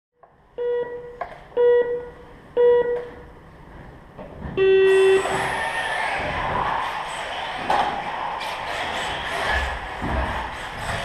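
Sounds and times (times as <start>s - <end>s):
countdown beeps: 0.6s - 3.3s, 4.6s - 5.3s.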